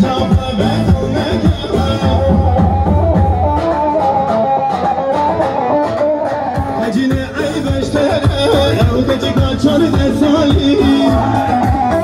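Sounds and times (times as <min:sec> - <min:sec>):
drum and bass beat: 0:00.0 - 0:12.0
live band dance music: 0:00.0 - 0:12.0.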